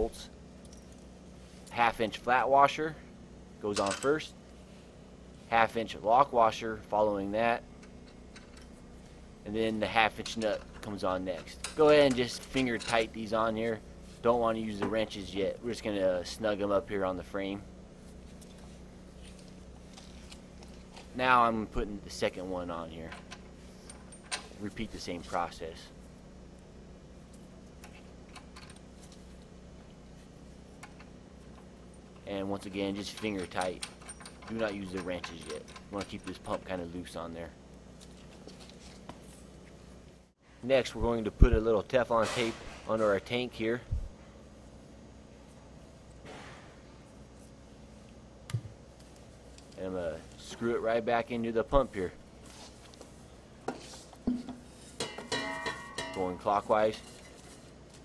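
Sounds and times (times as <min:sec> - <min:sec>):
steady low hum: 0:00.0 - 0:58.0
small metal hardware clicking: 0:33.1 - 0:36.6
taps on metal tank ringing: 0:55.0 - 0:56.4.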